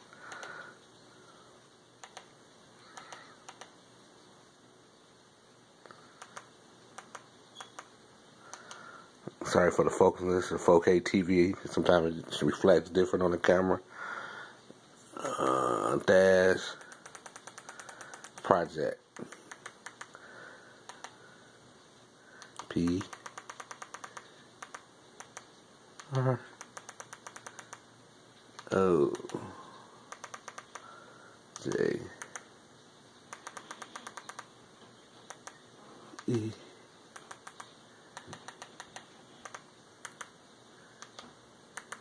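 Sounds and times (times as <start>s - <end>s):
remote control buttons clicking: 2.0s - 2.3s, 2.9s - 3.7s, 6.2s - 7.9s, 16.8s - 18.5s, 19.2s - 20.2s, 20.9s - 21.2s, 22.4s - 27.8s, 30.1s - 30.9s, 31.6s - 32.5s, 33.3s - 34.5s, 35.2s - 36.4s, 37.1s - 40.4s, 41.0s - 42.0s
brief vocal sound: 15.1s - 16.0s.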